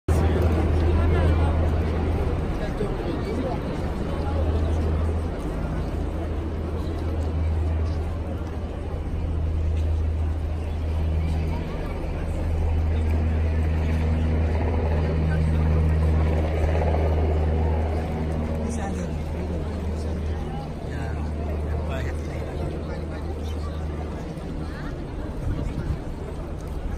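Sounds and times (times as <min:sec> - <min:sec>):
crowd talking: 0:00.1 - 0:26.9
traffic engines humming: 0:00.1 - 0:26.9.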